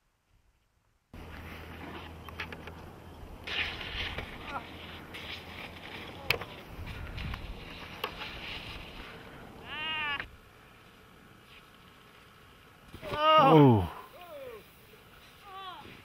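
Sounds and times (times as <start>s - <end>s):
outdoor mountainside noise: 0.0s - 16.0s
person yelping: 9.6s - 10.2s, 13.0s - 14.6s.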